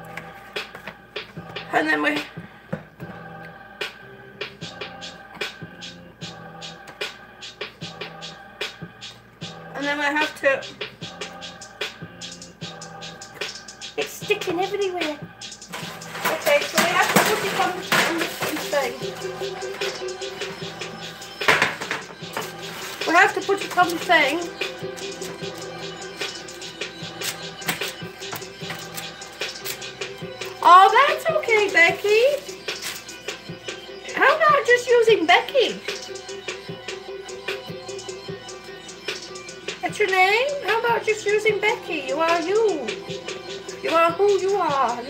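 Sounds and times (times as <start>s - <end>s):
background music with beat: 0.0s - 9.9s, 10.6s - 45.0s
utensil scraping plastic bowl: 15.6s - 20.6s, 21.4s - 25.4s.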